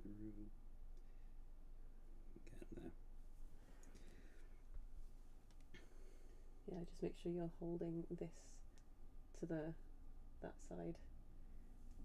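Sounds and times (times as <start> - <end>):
person whispering: 0.0 - 0.5.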